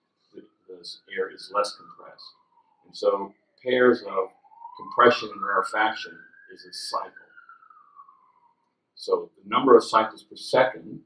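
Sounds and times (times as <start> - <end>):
faint tone sliding down: 0.9 - 9.2.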